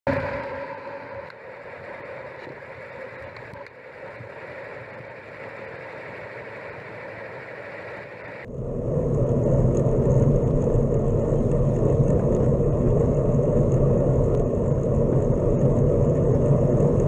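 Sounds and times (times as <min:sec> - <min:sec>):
muffled road and wind noise: 0:00.1 - 0:17.0.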